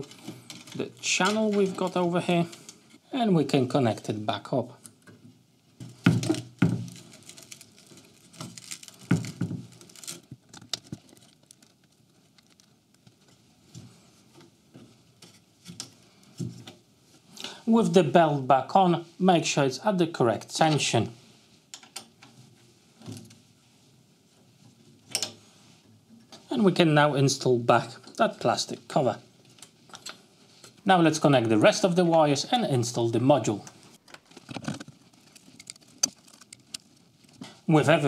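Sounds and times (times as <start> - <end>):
cable sleeve rustling and scraping: 0.0 - 3.0, 4.9 - 17.3, 33.7 - 37.6.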